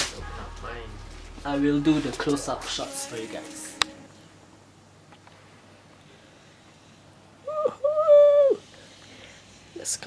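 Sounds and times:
man hooting excitedly: 7.4 - 8.6.

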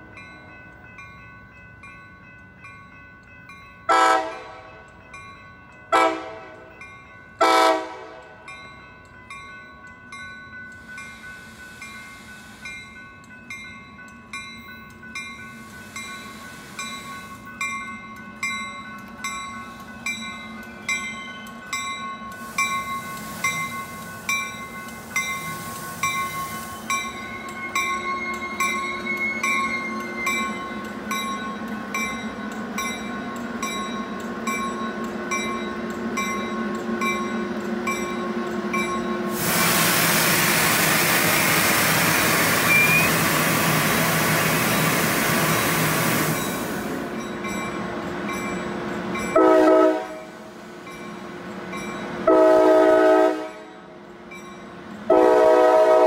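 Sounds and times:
loud rush of passing train: 0.0 - 56.0
train rolling and slowing: 0.0 - 56.0
warning bell ringing: 8.4 - 39.4.

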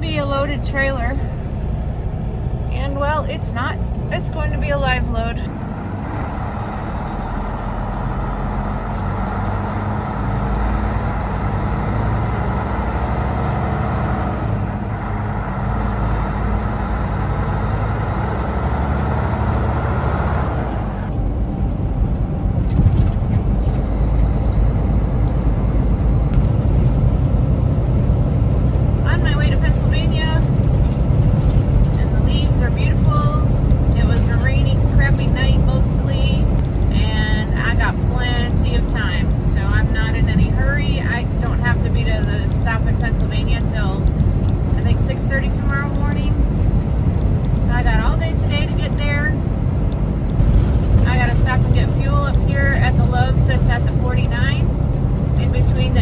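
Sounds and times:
truck engine and road rumble: 0.0 - 56.0.

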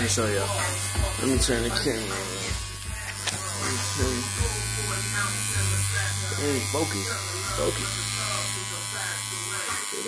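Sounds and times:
electric tattoo machine buzzing: 0.0 - 10.0.

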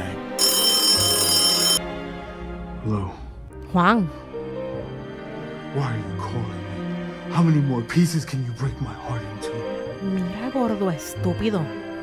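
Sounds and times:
background music: 0.0 - 12.0
telephone bell ringing: 0.4 - 1.8.

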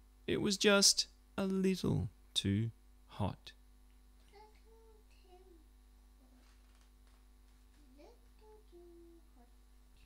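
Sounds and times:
person humming faintly: 7.8 - 10.0.

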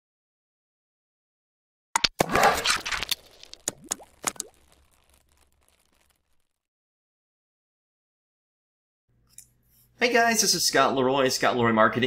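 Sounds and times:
quick pops: 2.0 - 6.5.

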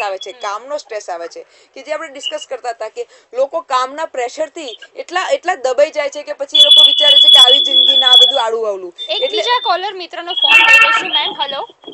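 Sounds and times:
woman speaking: 0.0 - 11.8
high-pitched tone: 6.6 - 8.4, 9.0 - 11.9.

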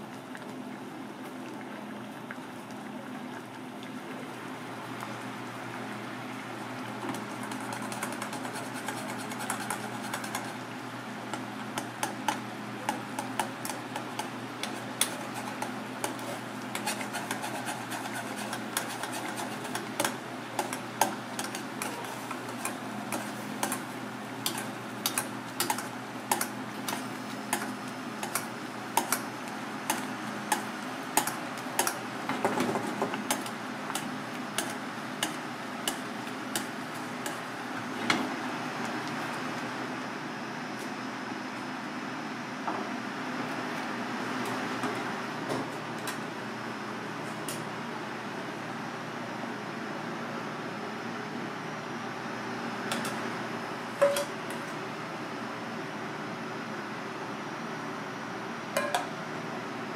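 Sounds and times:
sauce bubbling in saucepan: 0.0 - 37.9.

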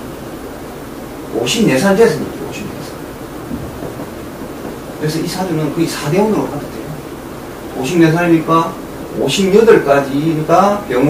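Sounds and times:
low room rumble with faint hiss: 0.0 - 11.0.

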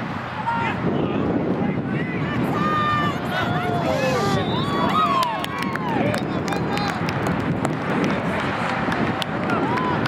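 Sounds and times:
wind rumble on microphone: 0.0 - 10.0.

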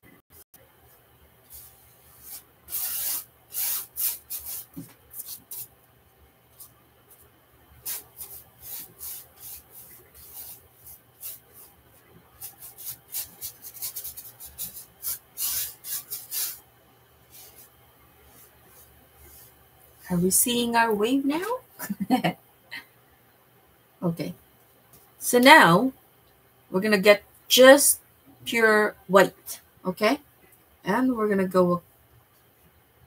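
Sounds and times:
paintbrush swishing on canvas: 0.9 - 5.7, 6.6 - 11.8, 17.3 - 20.1.

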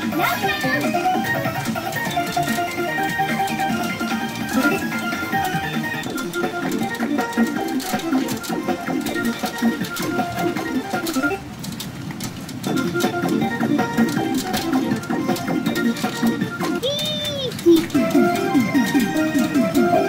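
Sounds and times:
pachinko machine music: 0.0 - 11.6, 12.4 - 20.0.

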